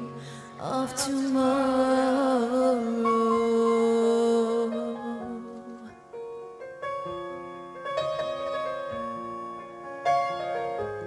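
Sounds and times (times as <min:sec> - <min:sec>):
soft piano notes: 0:00.0 - 0:11.0.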